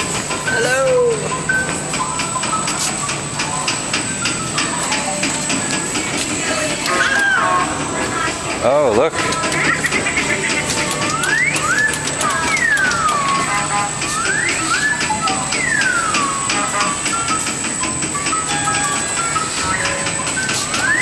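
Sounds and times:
simple beeping tune: 11.0 - 21.0.

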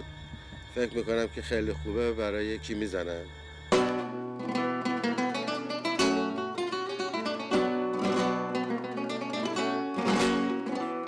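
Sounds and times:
acoustic guitar strumming and plucking: 3.7 - 11.0.

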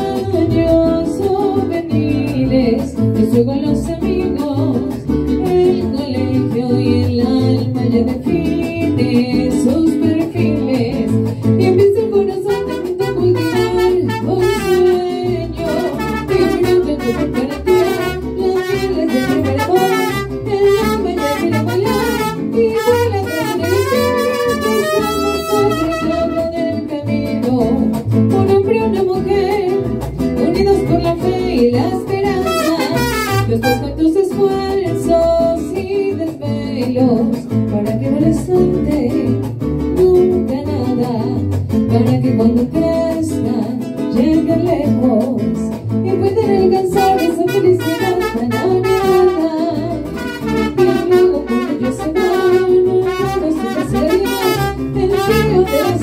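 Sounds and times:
mariachi band playing: 0.0 - 56.0
strummed guitars: 0.0 - 56.0
brass melody: 12.4 - 26.6, 32.4 - 34.2, 47.0 - 56.0.

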